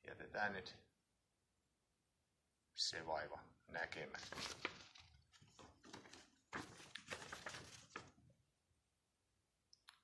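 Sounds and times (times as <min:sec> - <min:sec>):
paper and plastic rustling: 0:04.2 - 0:08.2.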